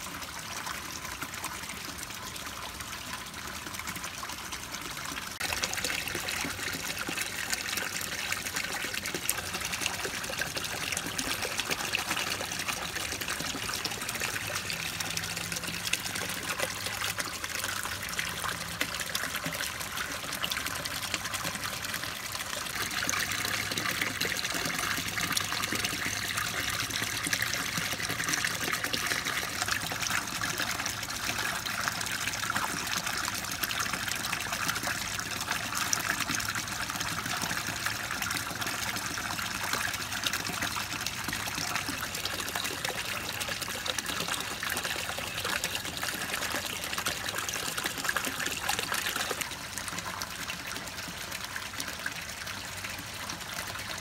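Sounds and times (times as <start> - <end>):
pond water trickling: 0.0 - 54.0.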